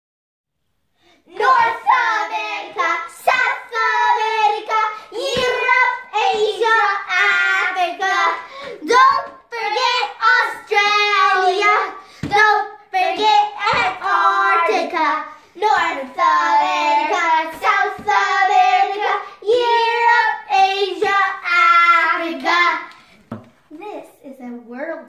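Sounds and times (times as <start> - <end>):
young children singing: 1.2 - 23.1.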